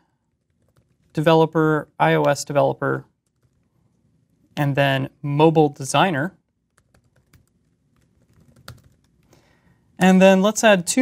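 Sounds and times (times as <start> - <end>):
typing on computer keyboard: 0.3 - 1.1, 3.2 - 3.7, 6.7 - 9.3.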